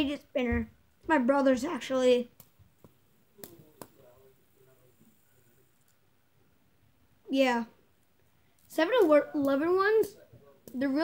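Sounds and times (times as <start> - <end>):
fidget spinner clicks: 8.6 - 11.0.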